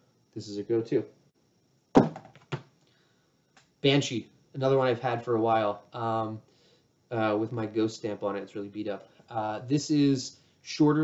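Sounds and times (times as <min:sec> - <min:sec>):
plastic discs knocking together: 0:02.0 - 0:02.7.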